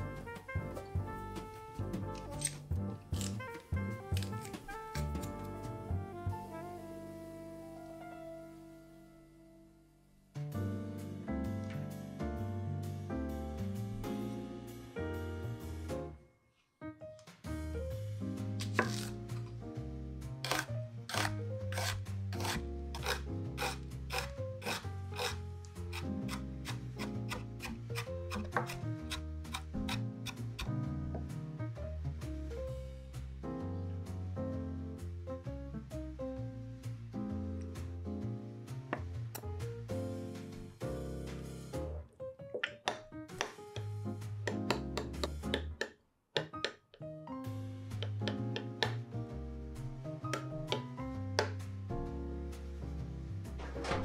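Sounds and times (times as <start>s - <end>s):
background music with steady beat: 0.0s - 6.9s, 21.2s - 42.0s, 42.8s - 54.0s
knife chopping on wooden board: 18.6s - 19.1s, 20.4s - 30.7s, 42.6s - 43.9s, 44.5s - 46.8s, 48.0s - 49.0s.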